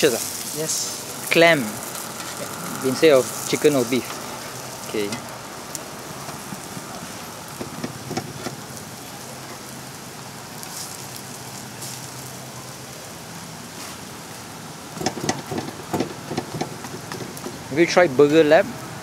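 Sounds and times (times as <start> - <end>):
burgers sizzling on griddle: 0.0 - 19.0.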